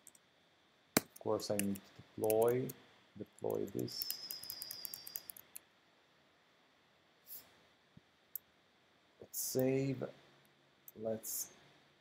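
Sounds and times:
high-pitched whine: 3.8 - 5.3.

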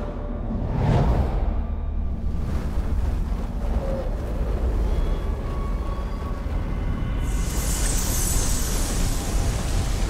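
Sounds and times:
deep rumble: 0.0 - 10.0.

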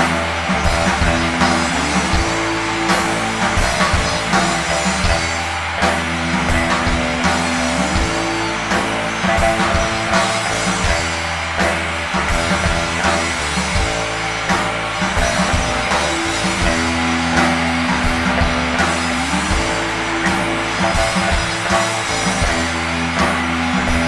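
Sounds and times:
bass guitar: 0.0 - 24.0
drum kit: 0.0 - 24.0
electric guitars: 0.0 - 24.0.

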